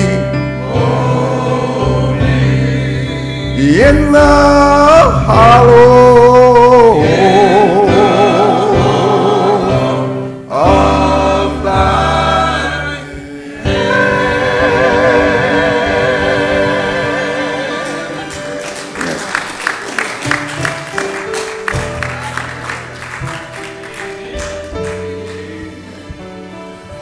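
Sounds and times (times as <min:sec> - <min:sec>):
slow gospel music: 0:00.0 - 0:27.0.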